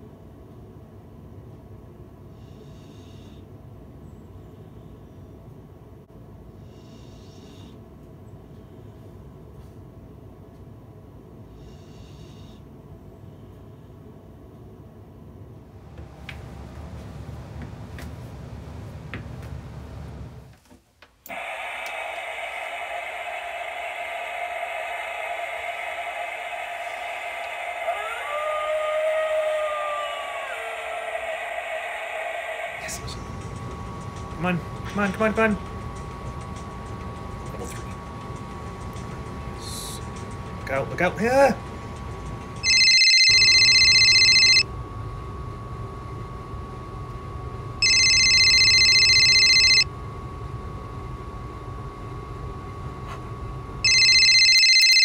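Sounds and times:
steady hiss: 0:21.3 - 0:28.3
recorded wolf howl: 0:21.3 - 0:33.2
phone ringing: 0:42.6 - 0:44.7, 0:47.8 - 0:49.9, 0:53.8 - 0:55.0.

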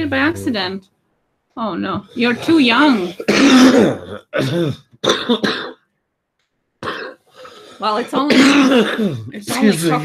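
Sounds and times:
woman speaking: 0:00.0 - 0:00.8, 0:01.6 - 0:03.3, 0:07.8 - 0:10.0
woman coughing and clearing throat: 0:02.2 - 0:05.8, 0:06.8 - 0:07.2, 0:07.8 - 0:09.8.

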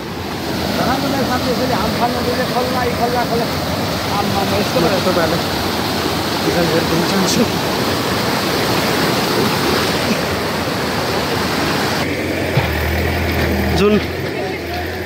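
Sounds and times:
river rushing over boulders: 0:00.0 - 0:15.0
faint voices: 0:13.7 - 0:15.0.

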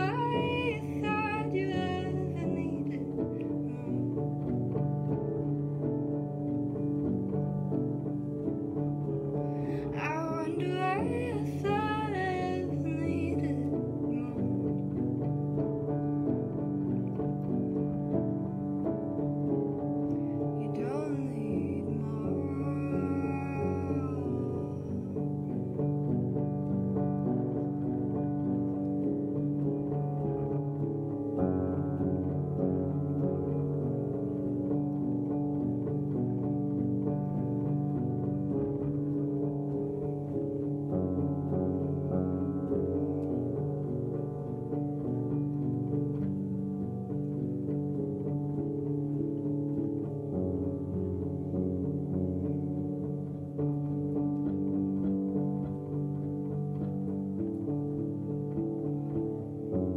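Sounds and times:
solo piano ballad chords: 0:00.0 - 0:59.9.

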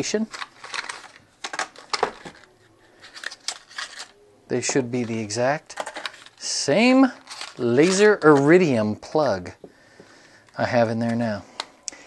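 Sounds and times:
plastic packaging clicks and rattling: 0:00.2 - 0:04.2, 0:05.7 - 0:06.4, 0:07.2 - 0:08.5.

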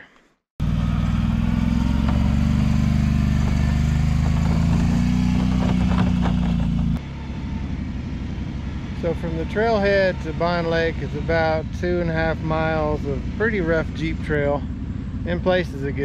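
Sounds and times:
atv engine running: 0:00.6 - 0:16.0
quieter rough engine: 0:00.6 - 0:16.0.

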